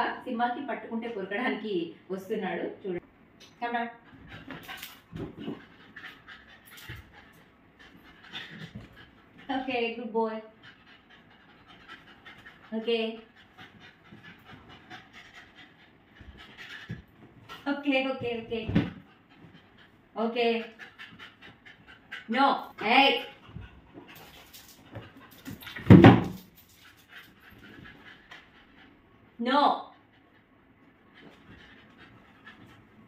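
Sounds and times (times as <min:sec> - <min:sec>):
puppy panting: 0:04.0 - 0:33.0.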